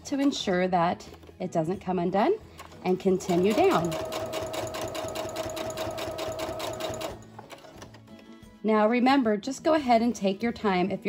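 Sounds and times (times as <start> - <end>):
sewing machine stitching: 2.6 - 8.0.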